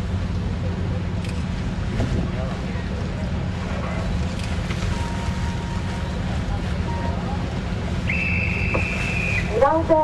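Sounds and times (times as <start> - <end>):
boat engine: 0.0 - 10.0
high whistle: 8.1 - 9.5.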